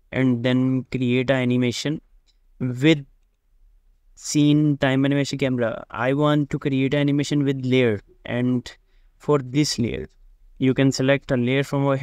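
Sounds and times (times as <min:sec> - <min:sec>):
man speaking: 0:00.1 - 0:03.2, 0:04.2 - 0:12.0
faint computer mouse click: 0:02.2 - 0:02.4.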